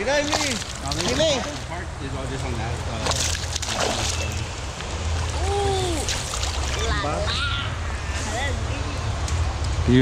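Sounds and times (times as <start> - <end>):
fish splashing at water surface: 0.2 - 1.7, 3.0 - 7.0
rush of moving water: 2.4 - 7.4.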